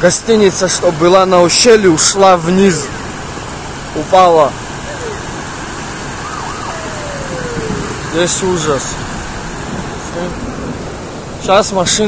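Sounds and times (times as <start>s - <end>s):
faint wavering siren tone: 4.8s - 5.4s, 6.2s - 8.4s
floodwater rushing: 4.9s - 8.4s.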